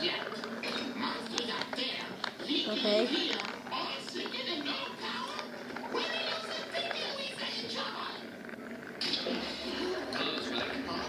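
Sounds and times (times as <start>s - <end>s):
movie soundtrack from television: 0.0s - 11.0s.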